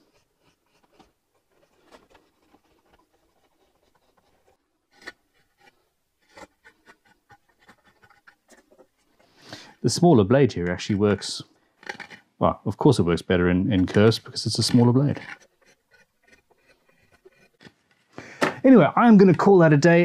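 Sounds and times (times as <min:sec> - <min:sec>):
knife scraping wood: 0:00.0 - 0:09.8, 0:11.8 - 0:12.3, 0:13.8 - 0:18.1.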